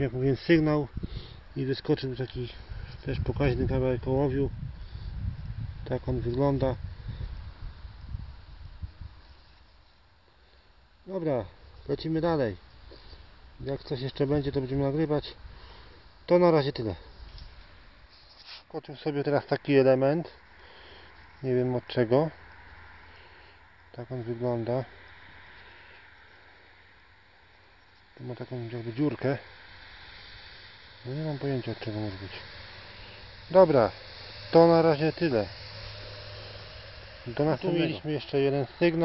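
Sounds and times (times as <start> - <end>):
quiet outdoor background: 0.0 - 39.0
hiss: 28.7 - 38.8.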